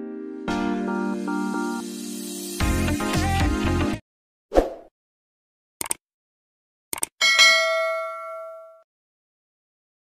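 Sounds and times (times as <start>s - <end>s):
notification bell ding: 7.2s - 8.9s.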